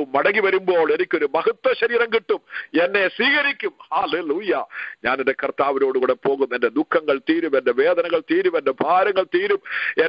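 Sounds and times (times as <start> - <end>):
man preaching over telephone line: 0.0 - 10.0.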